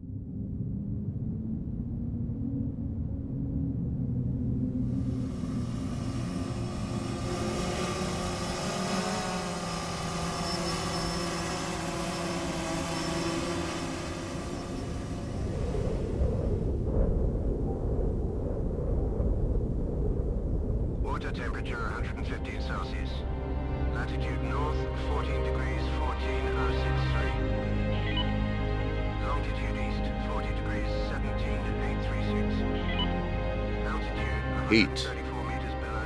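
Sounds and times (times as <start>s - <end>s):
low steady rumble: 0.0s - 25.6s
drone rotors whirring: 4.9s - 16.6s.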